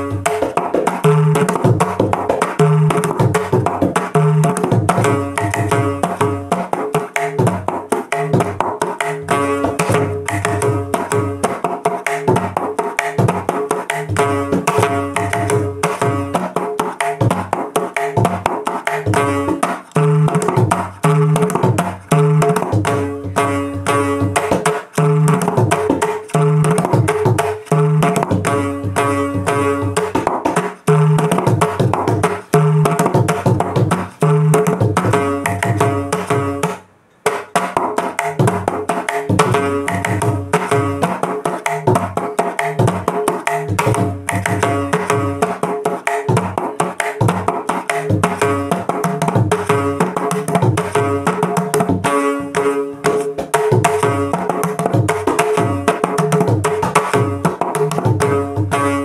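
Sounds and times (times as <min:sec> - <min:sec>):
hand drum playing: 0:00.0 - 0:59.0.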